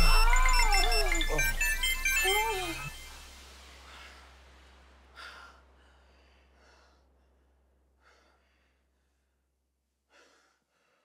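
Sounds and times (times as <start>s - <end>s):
woman moaning: 0.0s - 1.6s, 2.2s - 2.9s
music with high chiming notes: 0.0s - 3.4s
low steady bass note: 0.0s - 7.0s.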